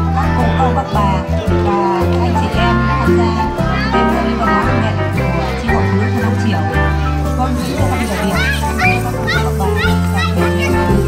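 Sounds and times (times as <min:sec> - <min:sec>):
backing track with bass line: 0:00.0 - 0:11.0.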